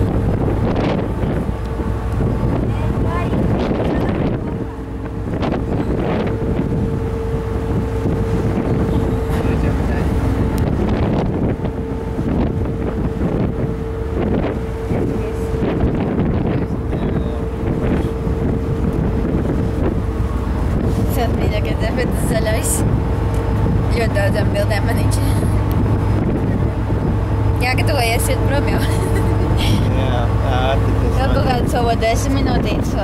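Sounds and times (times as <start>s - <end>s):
ship engines droning: 0.0s - 33.0s
wind buffeting microphone: 0.0s - 33.0s.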